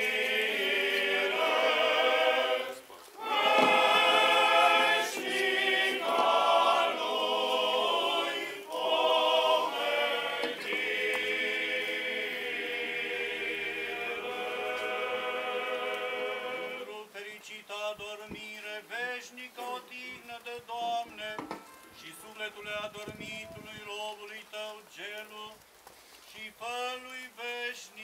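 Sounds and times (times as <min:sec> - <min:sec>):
male choir singing a hymn: 0:00.0 - 0:19.4.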